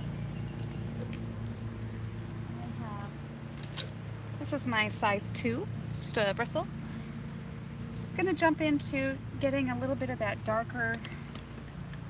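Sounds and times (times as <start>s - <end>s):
distant lawn mower engines: 0.0s - 12.0s.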